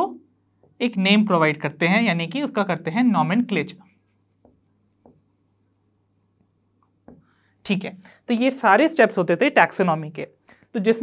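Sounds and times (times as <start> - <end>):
marker writing on whiteboard: 2.8 - 7.4
pen tapping: 4.2 - 5.7, 6.4 - 7.3.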